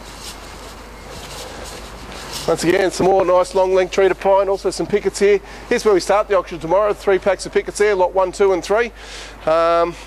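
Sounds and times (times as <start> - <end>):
faint footsteps on concrete: 0.0 - 4.0.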